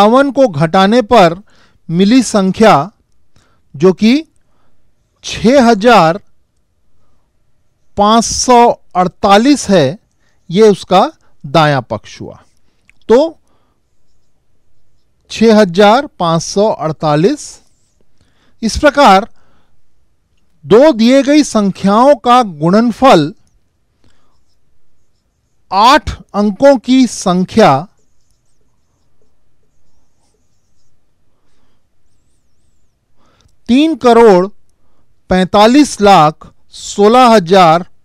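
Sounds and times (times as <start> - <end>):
marker pen on whiteboard: 5.3 - 19.6, 20.4 - 34.6
marker pen writing on whiteboard: 13.6 - 15.8, 24.1 - 32.9.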